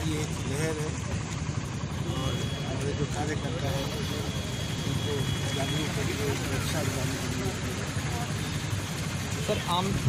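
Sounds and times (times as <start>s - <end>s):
vehicle engines idling: 0.0s - 10.0s.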